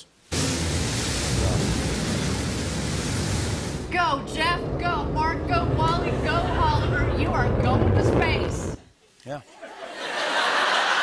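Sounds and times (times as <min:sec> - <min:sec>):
rocket engine roaring: 0:00.3 - 0:08.9.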